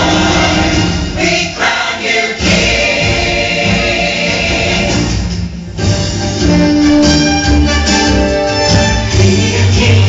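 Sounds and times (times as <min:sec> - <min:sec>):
choral music with singing: 0:00.0 - 0:05.6, 0:09.0 - 0:10.0.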